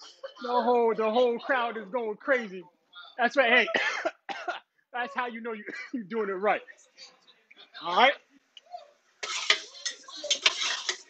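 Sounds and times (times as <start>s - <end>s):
metal spatula scraping griddle: 9.2s - 11.0s
spatula clinking against steel: 9.2s - 11.0s.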